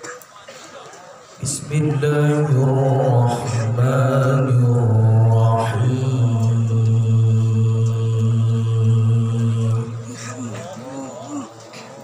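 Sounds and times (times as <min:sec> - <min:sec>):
man reciting melodically: 0:01.4 - 0:11.5.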